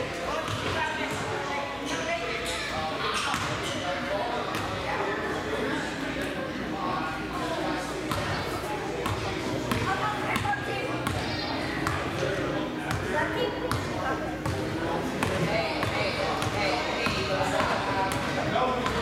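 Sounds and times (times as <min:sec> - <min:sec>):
many people talking: 0:00.0 - 0:19.0.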